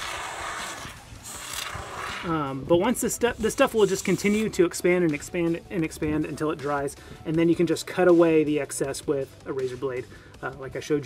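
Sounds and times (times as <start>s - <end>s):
aerosol foam spray hissing: 0.0s - 2.2s, 3.3s - 4.5s.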